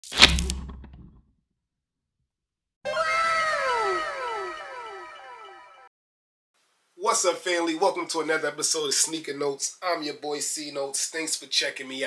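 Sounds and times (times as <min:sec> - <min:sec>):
downward gliding tone with echoes: 0:02.9 - 0:05.8.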